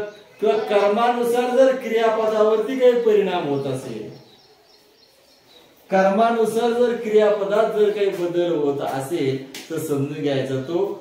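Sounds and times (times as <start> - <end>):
man speaking: 0.0 - 4.3, 5.9 - 11.0.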